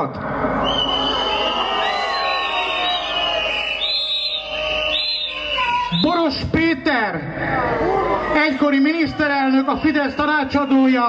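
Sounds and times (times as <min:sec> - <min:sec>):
crowd whistling: 0:00.4 - 0:06.6, 0:08.5 - 0:11.0.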